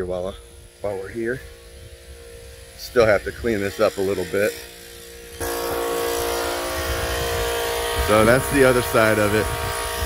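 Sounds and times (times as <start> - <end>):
engine droning steadily: 0.0 - 10.0.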